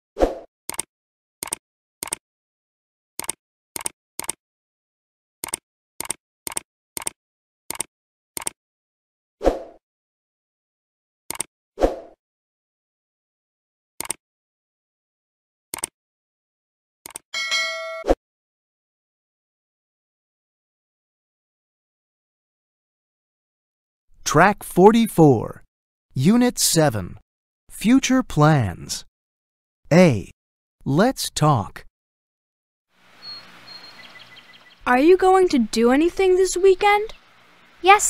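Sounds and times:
keystroke clicks: 0.7s - 2.2s, 3.2s - 4.4s, 5.4s - 8.6s
notification bell ding: 17.4s - 18.1s.

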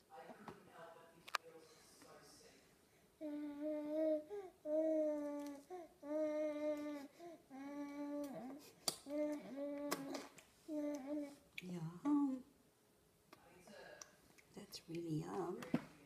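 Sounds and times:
baby humming while eating: 3.2s - 11.4s.

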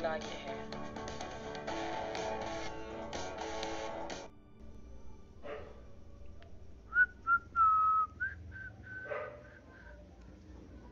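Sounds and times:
person whistling: 6.9s - 9.1s.

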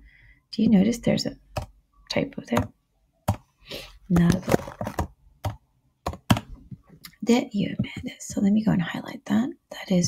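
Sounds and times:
computer keyboard keystrokes: 4.8s - 6.5s.

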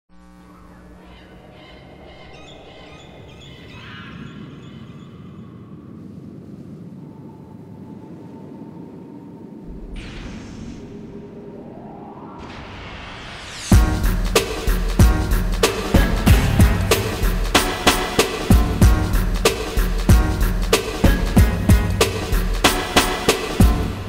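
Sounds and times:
ambient synth music: 0.2s - 24.0s
rising synth sweep: 9.6s - 21.3s.

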